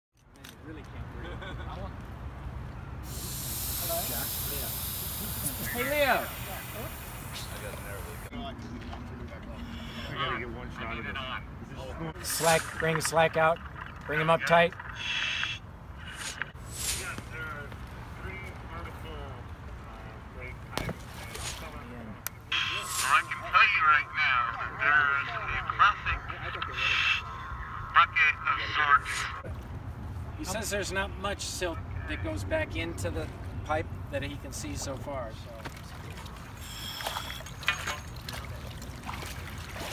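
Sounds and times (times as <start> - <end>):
air hissing: 3.1 - 8.3, 15.0 - 17.3, 22.5 - 23.4
muffled voices: 16.0 - 29.6.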